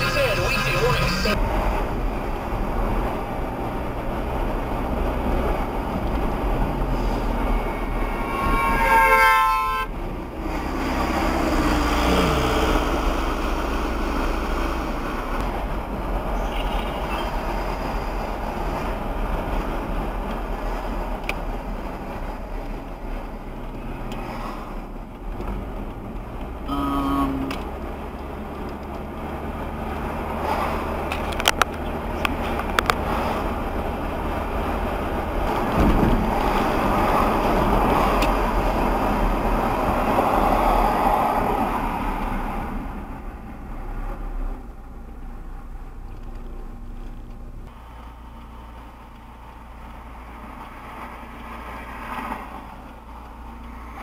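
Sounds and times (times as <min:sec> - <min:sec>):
car horn: 0:00.0 - 0:01.4, 0:07.1 - 0:10.0, 0:16.4 - 0:17.4
car road and engine noise: 0:00.0 - 0:54.0
short horn-like tone: 0:07.3 - 0:09.9.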